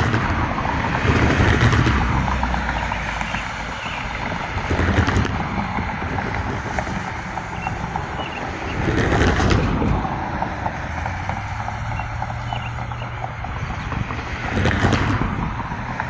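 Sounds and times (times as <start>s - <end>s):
steady low rumble: 0.0s - 16.0s
wind buffeting microphone: 0.0s - 16.0s.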